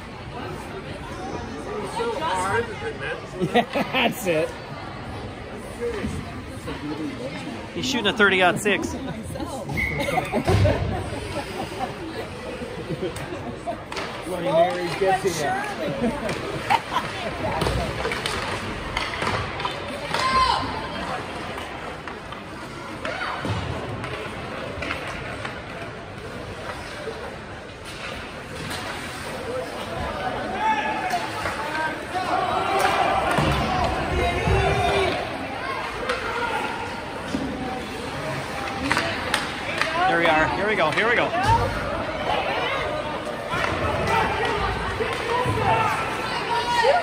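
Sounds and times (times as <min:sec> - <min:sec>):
spectators chattering and calling: 0:00.0 - 0:47.0.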